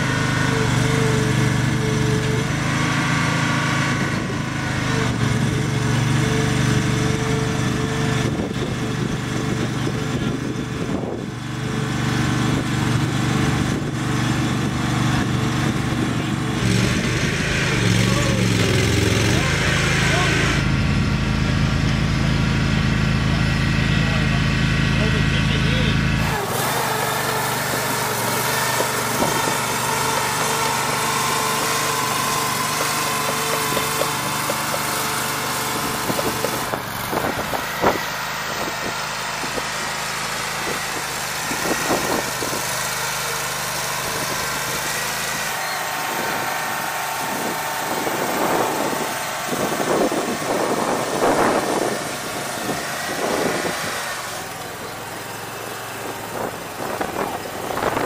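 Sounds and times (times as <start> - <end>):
tracked vehicle engine running: 0.0 - 58.0.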